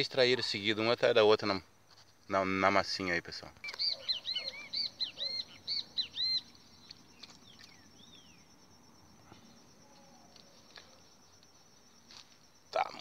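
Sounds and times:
bird calling: 3.6 - 8.5.

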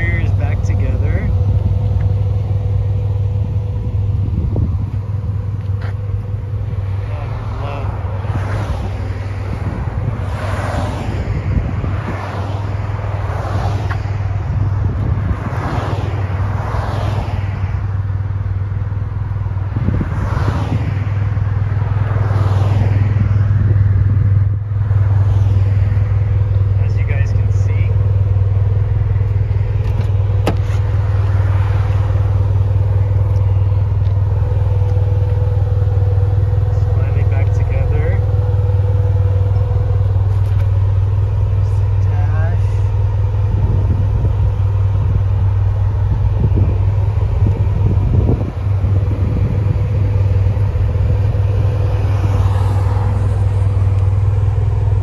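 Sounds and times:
car engine idling: 0.0 - 55.0.

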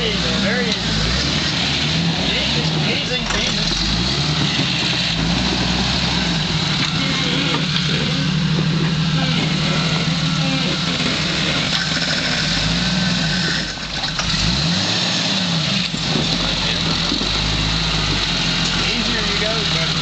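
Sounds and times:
off-road vehicle engine revving: 0.0 - 20.0.

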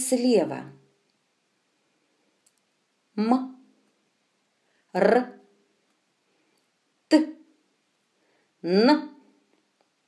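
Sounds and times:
faint click: 2.4 - 2.7.

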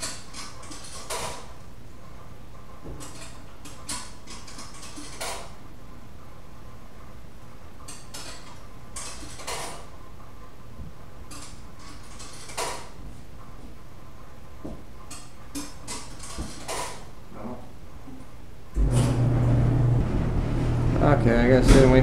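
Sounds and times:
clothes dryer running: 18.7 - 22.0.

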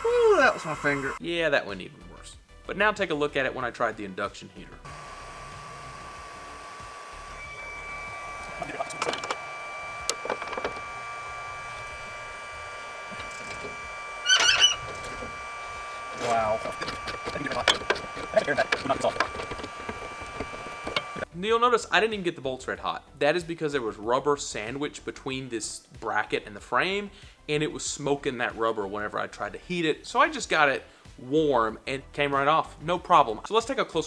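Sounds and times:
induction heater high-pitched whine: 0.0 - 1.2, 4.8 - 21.3
bolt squealing: 7.5 - 9.4, 10.0 - 10.9, 13.1 - 15.4, 16.1 - 21.2
ratchet clicks: 16.2 - 21.2.

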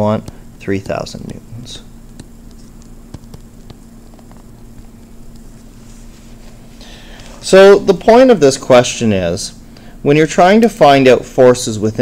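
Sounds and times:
stylus tapping on screen: 0.0 - 5.6.

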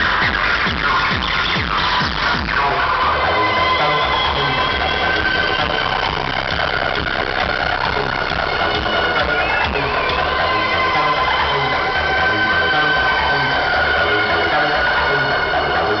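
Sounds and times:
acid house dance music: 0.0 - 16.0.

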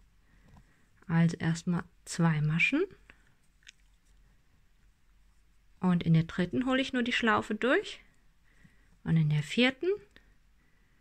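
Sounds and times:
faint clicks: 3.1 - 4.2.

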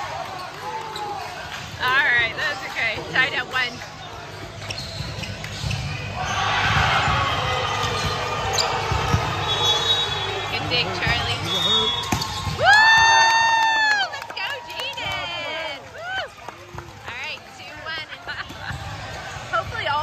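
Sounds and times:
sneaker squeaks: 2.4 - 12.6
volleyball being hit: 11.0 - 13.2.

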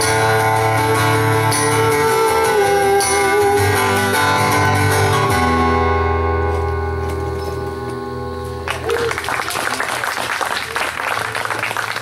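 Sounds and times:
acoustic guitar playing: 0.0 - 9.2
applause: 8.6 - 12.0.

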